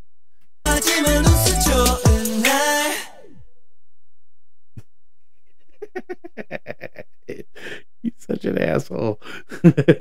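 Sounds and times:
man laughing: 5.6s - 8.2s, 9.2s - 10.0s.

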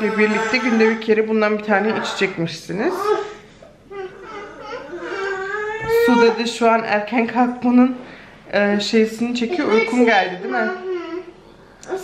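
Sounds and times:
toddler whining cry: 0.0s - 1.0s, 2.9s - 6.4s, 9.7s - 11.4s.

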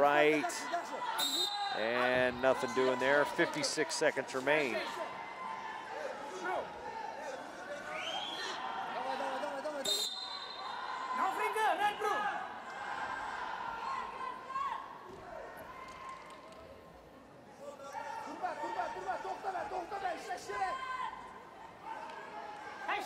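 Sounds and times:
referee's whistle blast: 1.2s - 1.8s, 9.8s - 10.8s.

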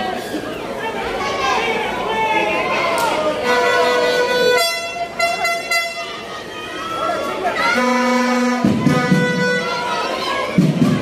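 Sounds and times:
arena crowd noise: 0.0s - 11.0s
horn blasts: 3.4s - 6.3s, 7.6s - 10.2s.

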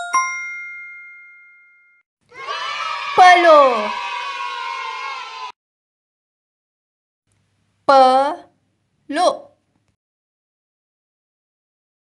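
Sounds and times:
bell-like chime ringing: 0.0s - 2.0s.

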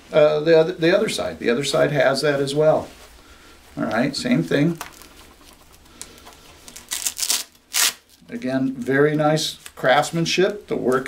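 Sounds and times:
fabric rustling: 1.7s - 11.0s.

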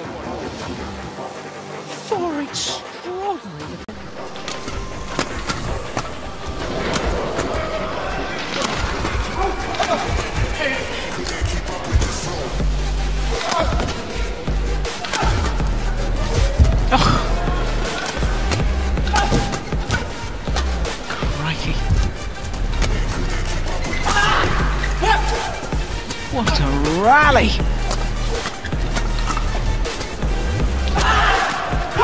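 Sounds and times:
background music: 0.0s - 32.0s
rackets hitting shuttlecock: 17.8s - 20.7s.

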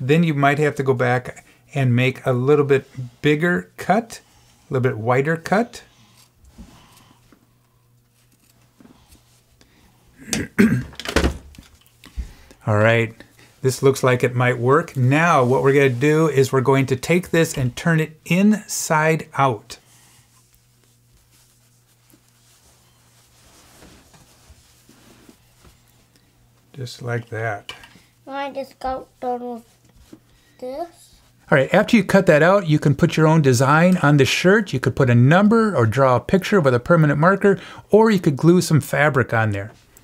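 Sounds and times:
low steady hum: 0.0s - 40.0s
soft rustling of felt fabric: 12.2s - 18.4s, 19.3s - 27.2s, 28.8s - 31.5s.

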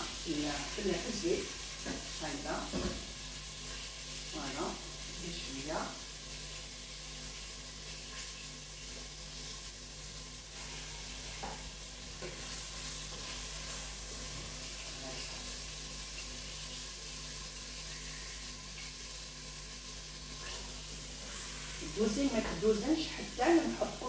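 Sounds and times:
meat sizzling in hot oil: 0.0s - 24.0s.

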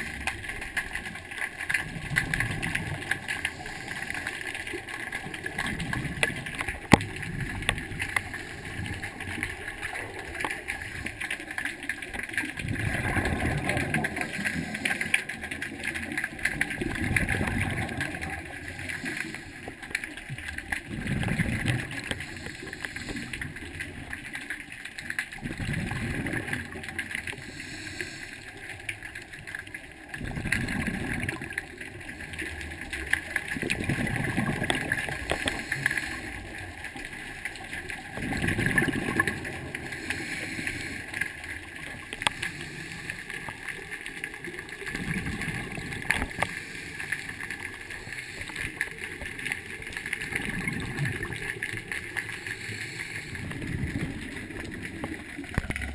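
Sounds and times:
exhaled bubbles gushing underwater: 0.0s - 55.9s
steady faint crackle: 0.0s - 55.9s.

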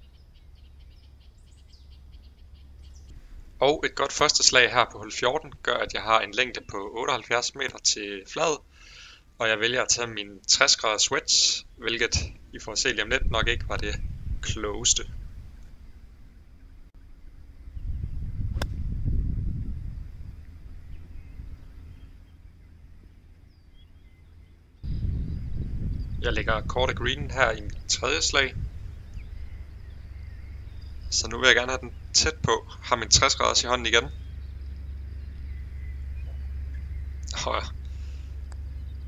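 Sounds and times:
low rumble: 0.0s - 8.8s, 9.6s - 39.0s
wind on microphone: 12.0s - 16.2s, 17.3s - 22.5s, 24.8s - 39.0s
golf club striking ball: 18.5s - 18.8s.

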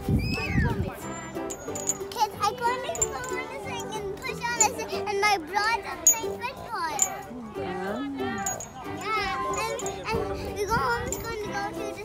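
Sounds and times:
background music: 0.0s - 12.0s
children chattering: 0.0s - 12.0s.

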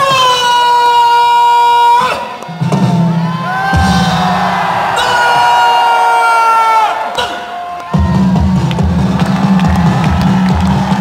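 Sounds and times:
crowd yelling: 0.0s - 11.0s
drum beat: 2.6s - 5.8s, 7.9s - 11.0s.

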